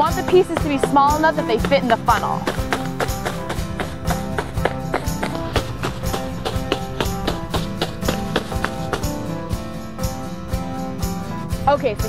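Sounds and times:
upbeat music with percussive beat: 0.0s - 11.8s.

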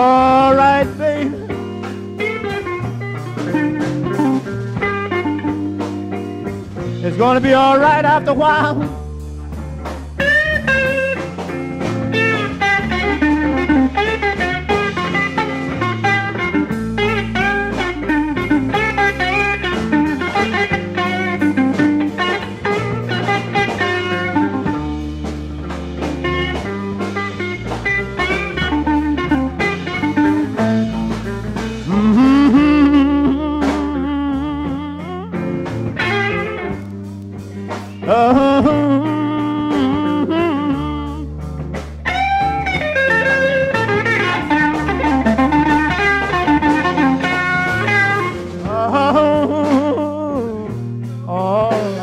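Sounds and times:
bass line: 0.0s - 52.0s
electric blues guitar solo: 0.0s - 52.0s.

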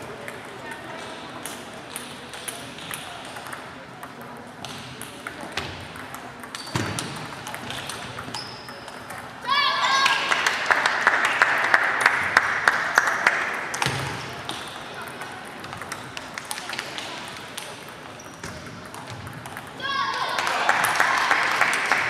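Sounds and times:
table tennis balls clicking: 0.0s - 9.4s, 13.0s - 19.8s.

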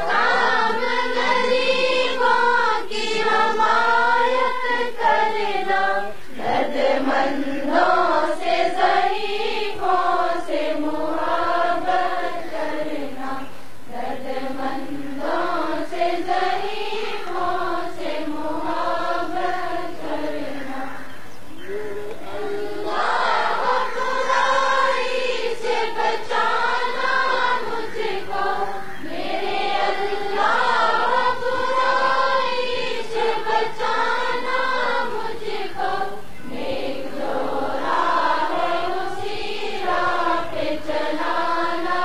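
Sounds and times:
choir singing in unison: 0.0s - 42.0s.

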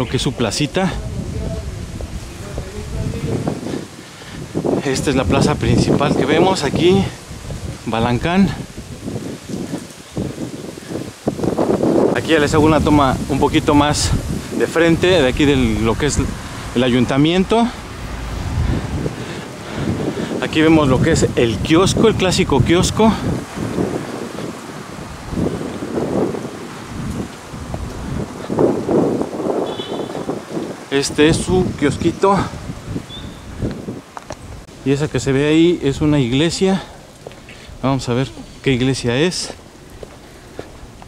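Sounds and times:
wind buffeting microphone: 0.0s - 41.0s.

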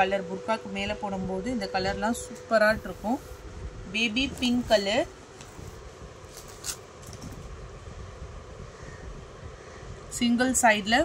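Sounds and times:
low background rumble: 0.0s - 11.0s
soft fabric rustles: 2.6s - 3.4s, 4.1s - 7.3s.

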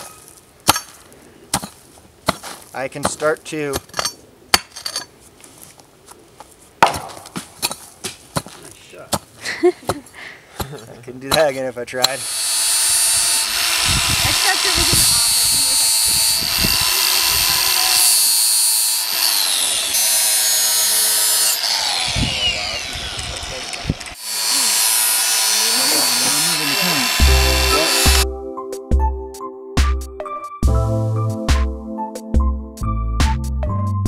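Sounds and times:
power tool grinding steel: 12.0s - 28.2s.

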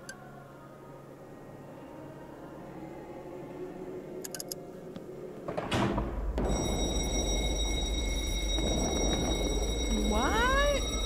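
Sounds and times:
low rumble: 4.8s - 11.0s
thin steady high tones: 6.4s - 11.0s.

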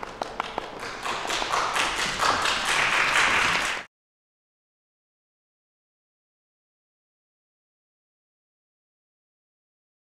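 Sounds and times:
children tapping hand drums: 0.0s - 3.9s.

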